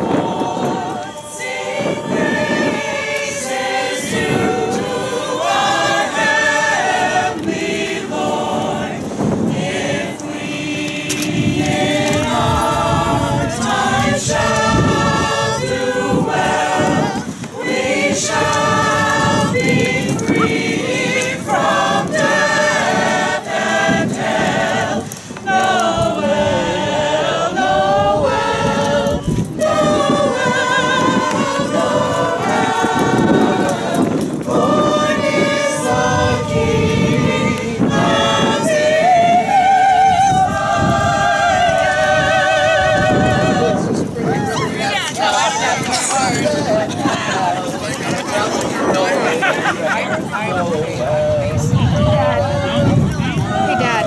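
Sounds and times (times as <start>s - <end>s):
mixed choir singing a carol: 0.0s - 54.0s.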